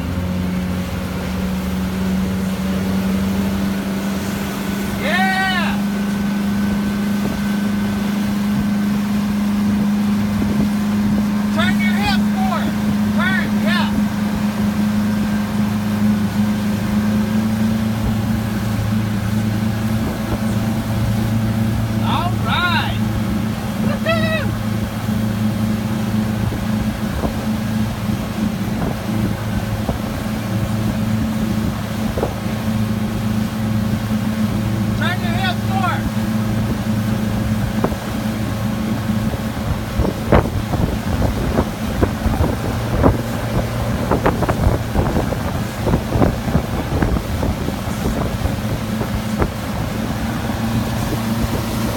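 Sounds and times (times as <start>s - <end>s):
boat wake rushing: 0.0s - 51.9s
outboard motor humming: 0.0s - 51.9s
wind on microphone: 5.9s - 11.6s, 13.9s - 22.0s, 23.0s - 35.0s, 36.0s - 51.9s.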